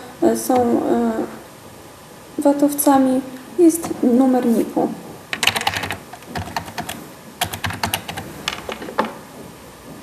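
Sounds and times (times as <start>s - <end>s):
computer keyboard typing: 5.3s - 8.8s.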